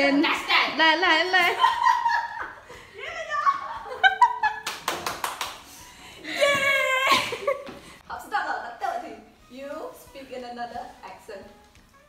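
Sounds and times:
hand claps: 4.6 - 5.7
women laughing and shrieking: 6.3 - 7.6.

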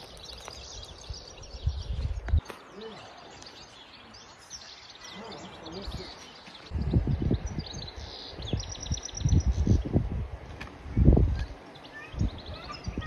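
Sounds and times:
wind buffeting microphone: 0.0 - 2.5, 5.8 - 13.0
small birds chirping: 0.0 - 13.0.

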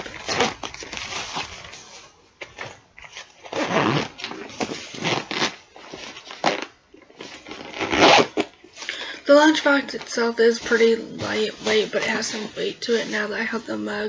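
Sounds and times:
fabric rustling and scraping: 0.0 - 14.0
zipper being pulled shut: 3.5 - 5.6, 7.4 - 8.5.

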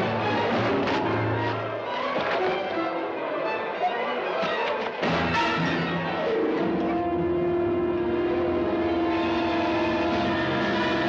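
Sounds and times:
sustained dissonant orchestral chord: 6.1 - 11.0.

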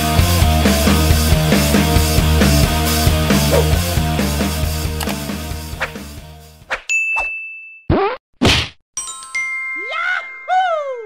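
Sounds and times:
rock music: 0.0 - 6.6.

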